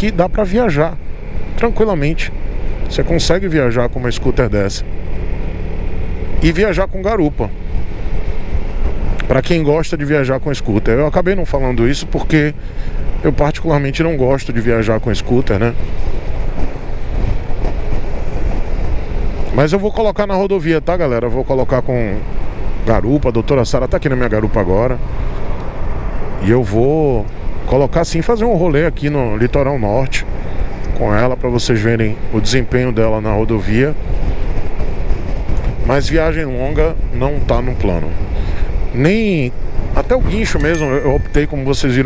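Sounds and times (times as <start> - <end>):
road noise: 0.0 - 42.0.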